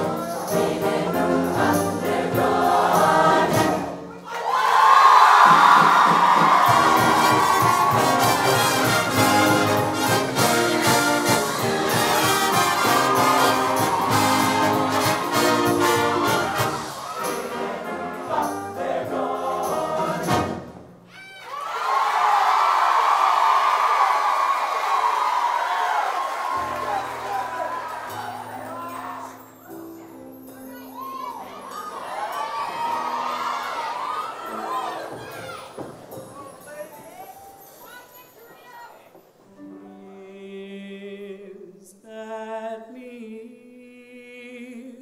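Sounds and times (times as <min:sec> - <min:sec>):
ensemble voices singing: 0:00.0 - 0:04.1, 0:06.2 - 0:20.8
live band with brass section: 0:05.4 - 0:20.9.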